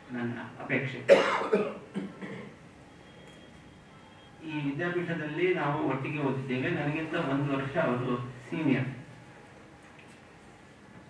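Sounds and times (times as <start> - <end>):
man coughing: 1.1 - 2.6.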